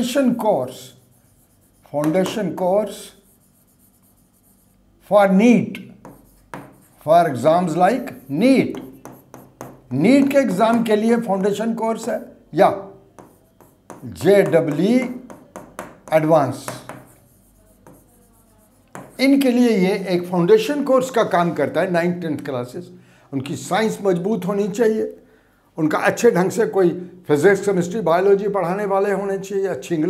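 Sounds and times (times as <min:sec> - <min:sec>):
chalk scratching on blackboard: 0:00.1 - 0:04.9, 0:05.9 - 0:12.3, 0:13.1 - 0:19.5.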